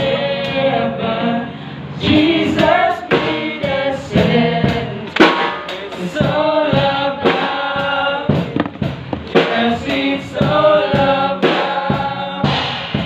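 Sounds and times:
men singing gospel song: 0:00.0 - 0:13.0.

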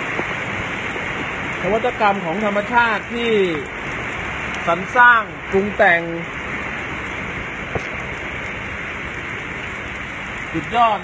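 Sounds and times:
rain falling: 0:00.0 - 0:11.0.

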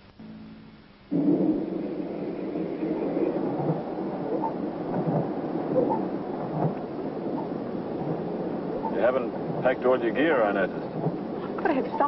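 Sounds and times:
heavy rain: 0:00.0 - 0:12.0
low rumbling: 0:00.1 - 0:12.0.

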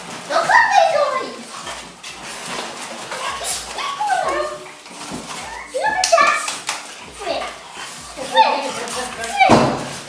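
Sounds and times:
puppies whimpering and yipping: 0:00.3 - 0:10.0.

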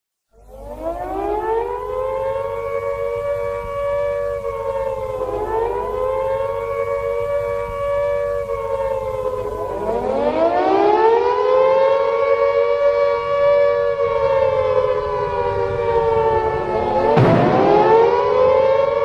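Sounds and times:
air-raid siren wailing: 0:00.3 - 0:19.0.

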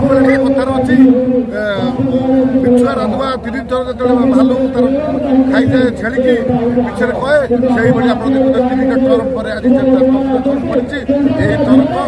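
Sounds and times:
background voices chattering: 0:00.0 - 0:12.0
man speaking: 0:00.0 - 0:12.0.

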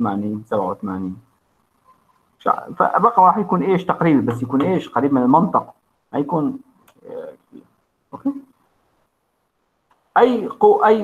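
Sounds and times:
man speaking: 0:00.0 - 0:01.2, 0:02.4 - 0:07.6, 0:08.2 - 0:08.5, 0:10.1 - 0:11.0.

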